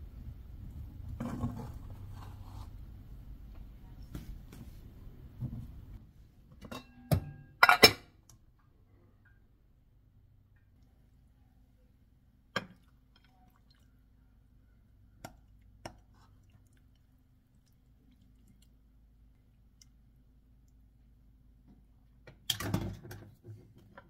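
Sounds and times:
dishes knocking and clinking: 0:06.6 - 0:08.1.

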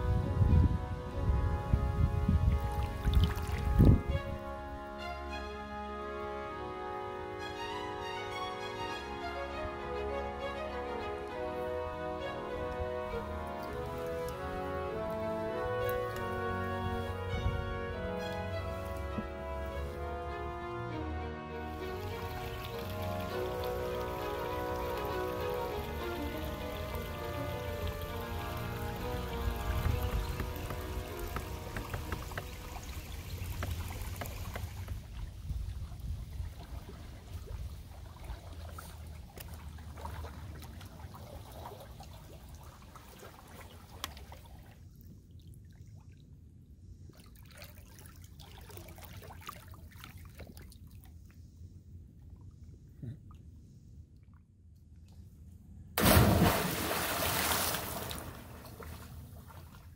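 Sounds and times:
river water lapping: 0:01.5 - 0:55.4, 0:56.0 - 0:59.9
instrumental background music: 0:02.4 - 0:32.8
small water splashes: 0:02.5 - 0:04.2, 0:21.7 - 0:46.4, 0:47.0 - 0:51.4, 0:56.0 - 0:59.9.

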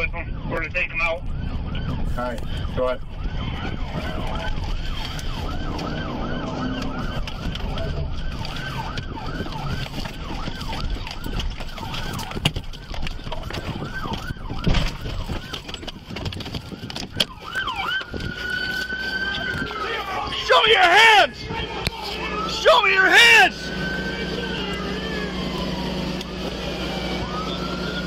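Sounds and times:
police siren yelping: 0:00.0 - 0:28.0.

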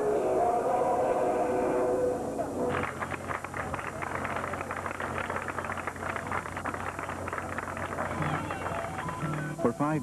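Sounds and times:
crowd applauding: 0:02.7 - 0:10.0.

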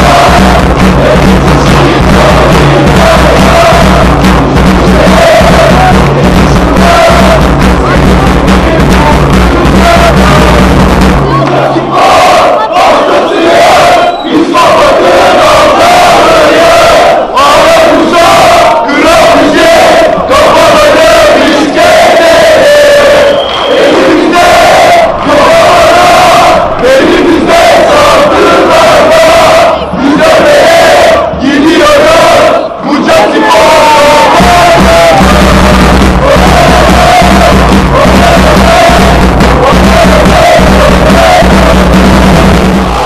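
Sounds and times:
crowd of men chanting a song: 0:00.0 - 0:43.0.

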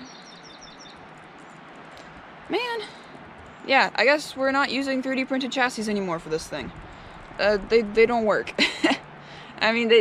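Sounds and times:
small bird chirping: 0:00.0 - 0:03.7.

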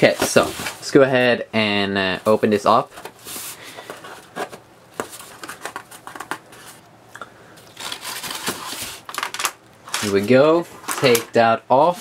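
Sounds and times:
cardboard and tape rustling: 0:00.0 - 0:01.0, 0:02.2 - 0:06.8, 0:07.6 - 0:12.0.

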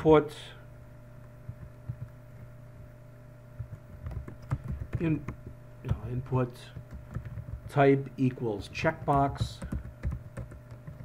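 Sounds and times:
steady low hum: 0:00.0 - 0:11.0
computer keyboard typing: 0:01.5 - 0:02.2, 0:03.6 - 0:06.1, 0:06.7 - 0:07.8, 0:08.7 - 0:11.0.

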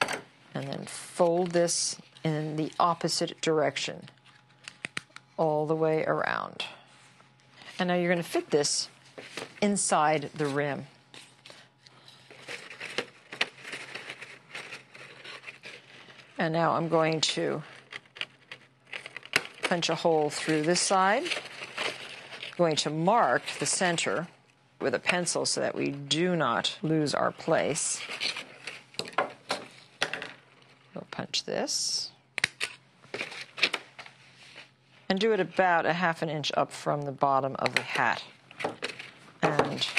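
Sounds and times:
paper rustling and crackling: 0:11.2 - 0:16.4, 0:17.0 - 0:24.2, 0:28.0 - 0:30.8, 0:32.6 - 0:34.7.

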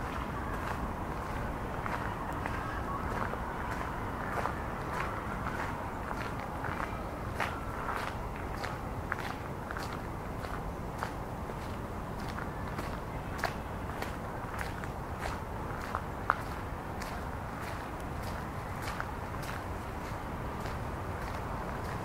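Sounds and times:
footsteps on a path: 0:00.0 - 0:22.0
low city hum: 0:00.0 - 0:22.0.

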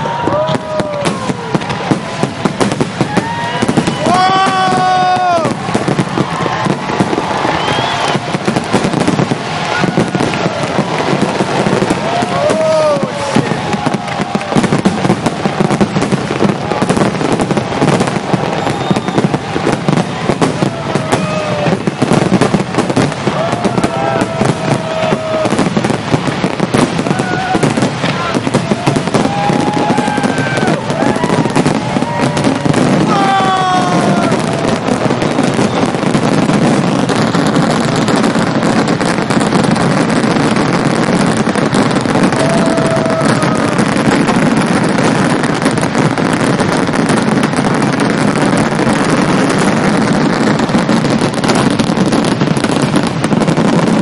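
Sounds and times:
firework crackling: 0:00.0 - 0:54.0.

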